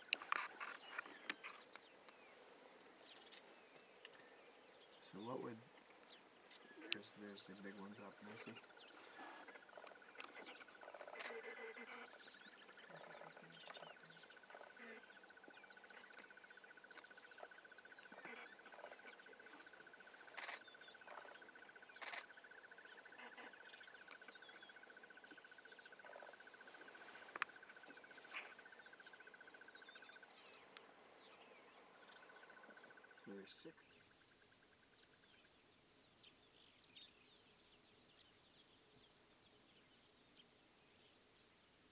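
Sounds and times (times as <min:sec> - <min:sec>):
insect trill: 0:08.2 - 0:30.2.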